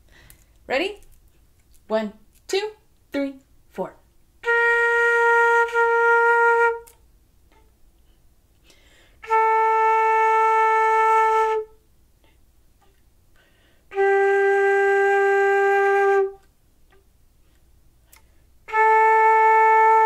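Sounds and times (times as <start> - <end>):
flute playing long notes: 4.4 - 7.0, 9.2 - 11.8, 13.9 - 16.5, 18.7 - 20.0.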